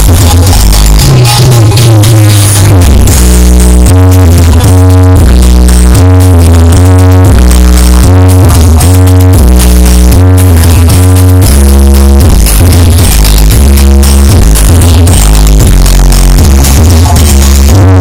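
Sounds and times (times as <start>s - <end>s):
loud electronic dance music: 0.0s - 18.0s.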